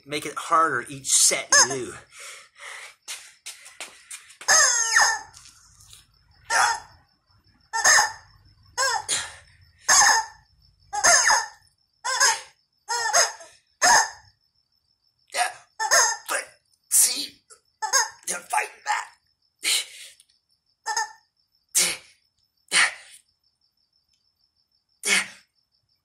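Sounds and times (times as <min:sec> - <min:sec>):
rubber chicken toy squawking: 0:01.5 - 0:01.8, 0:04.5 - 0:05.3, 0:07.7 - 0:08.2, 0:09.9 - 0:10.4, 0:11.0 - 0:14.2, 0:15.8 - 0:16.3, 0:17.8 - 0:18.2, 0:20.9 - 0:21.2.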